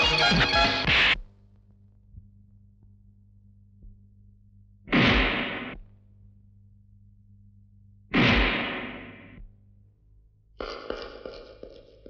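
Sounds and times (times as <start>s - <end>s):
low steady hum: 1.3s - 10.6s.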